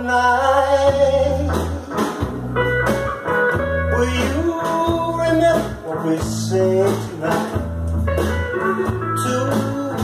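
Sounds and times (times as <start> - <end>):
guitar plucked notes: 0.9 - 6.0, 6.6 - 10.0.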